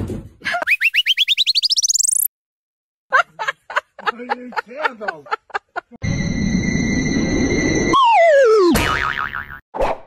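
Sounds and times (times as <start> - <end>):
cartoon rising chirps: 0.6 - 2.3, 6.0 - 8.7.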